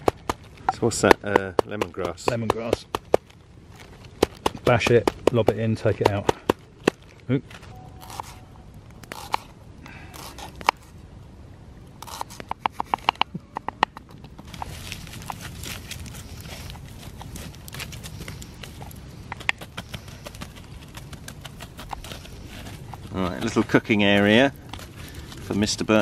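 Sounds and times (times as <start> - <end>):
campfire crackling and popping: 0.0 - 7.3, 8.0 - 26.0.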